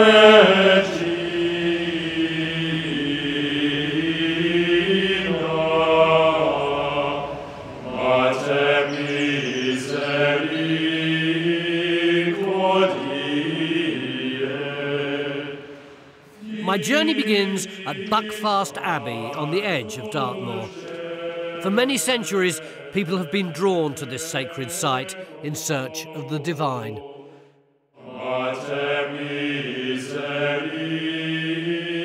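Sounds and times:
choral chant: 0.0 - 32.0.

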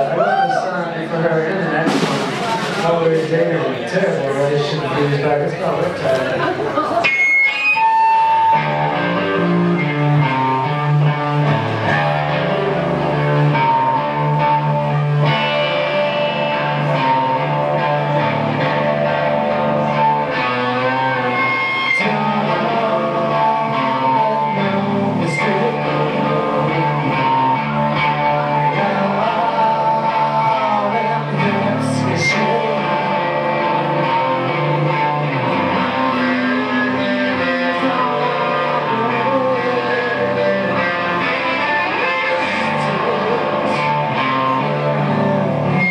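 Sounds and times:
live rock band playing: 0.0 - 45.9.

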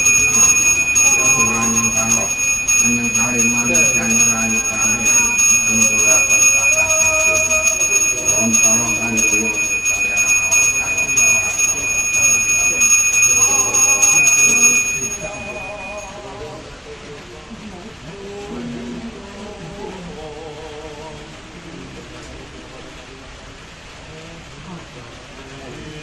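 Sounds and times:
brass hand bell ringing rapidly: 0.0 - 16.2
person chanting a prayer: 0.0 - 17.0.

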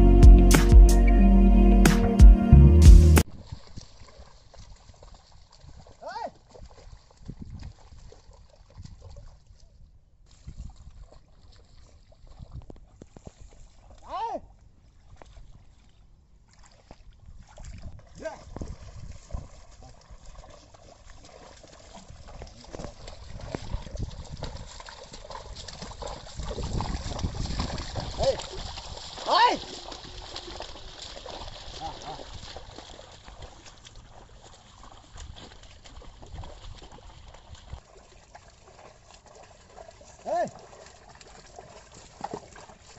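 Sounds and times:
hooves squelching in muddy water: 3.2 - 42.9.

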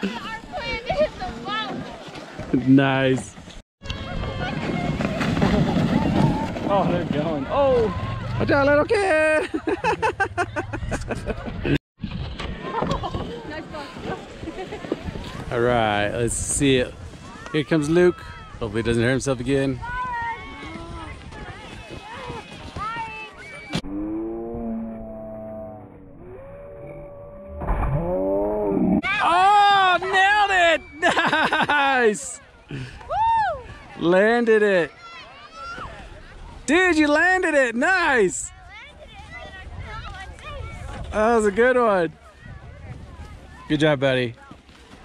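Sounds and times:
loud excited shout: 29.0 - 32.0
wind buffeting microphone: 39.0 - 41.2, 42.3 - 43.7.

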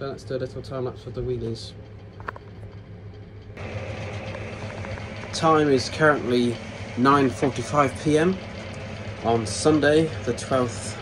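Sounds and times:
low steady background hum: 0.0 - 11.0.

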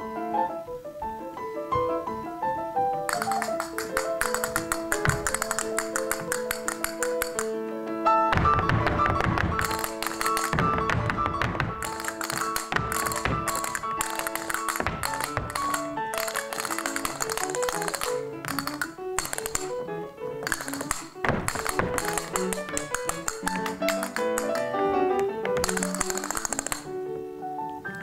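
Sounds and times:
grand piano dance music: 0.0 - 28.0
dancers' shoes stamping on stage: 3.1 - 7.5, 8.2 - 27.0.

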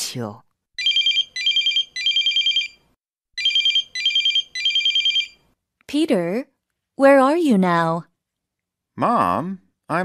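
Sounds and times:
trilling electronic phone ring: 0.8 - 2.8, 3.4 - 5.4.

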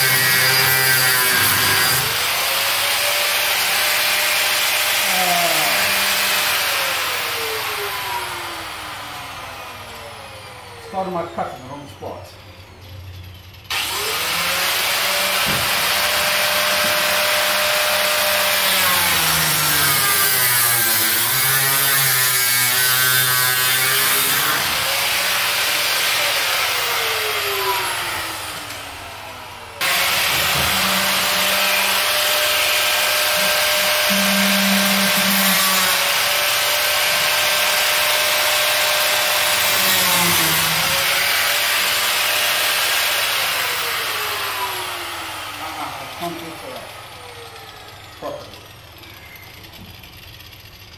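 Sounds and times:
power tool cutting steel bars: 0.0 - 50.9.

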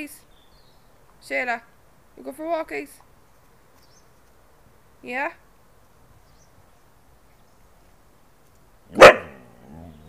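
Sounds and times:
dog barking: 8.9 - 9.5
dog wavering vocal sound: 9.2 - 10.0.

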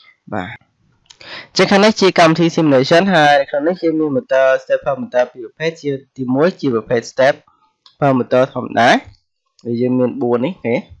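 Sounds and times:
man speaking: 0.3 - 9.1, 9.7 - 11.0.

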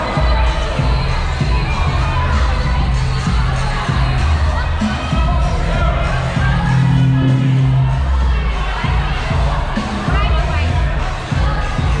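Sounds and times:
bass-heavy music: 0.0 - 12.0
crowd shouting and cheering: 0.0 - 12.0.

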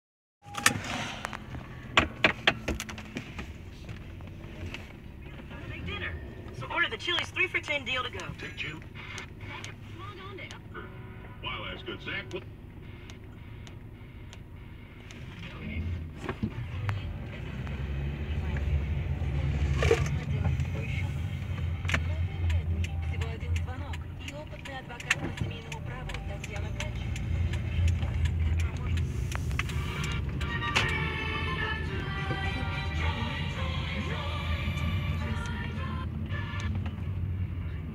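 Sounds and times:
car cabin hum: 0.5 - 37.9.

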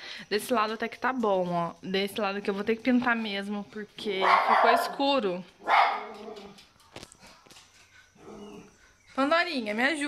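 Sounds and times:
dog whimpering: 8.2 - 8.7.

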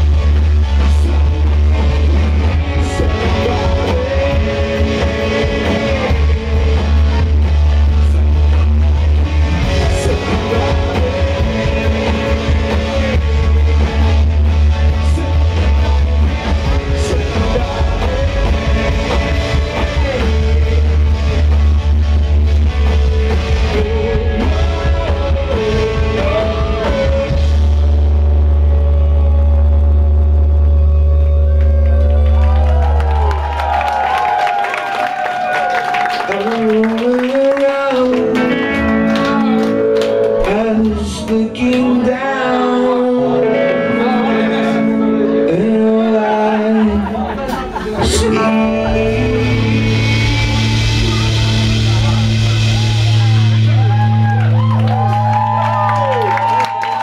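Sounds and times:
crowd cheering: 28.6 - 57.0
voices whooping and shouting: 31.5 - 36.6, 52.6 - 57.0
guitar notes bending: 38.0 - 56.3
electric guitar chord ringing: 43.2 - 46.3, 48.0 - 56.3.

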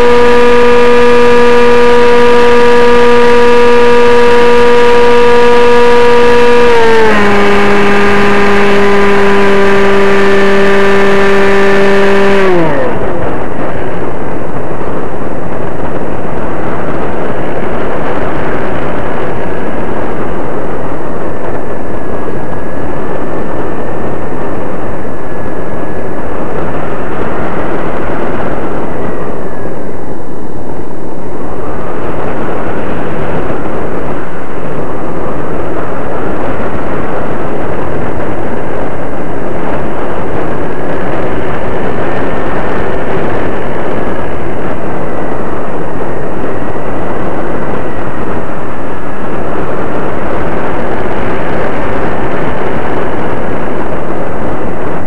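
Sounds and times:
model plane motor whining: 0.0 - 29.9
wind rush: 0.0 - 55.0.

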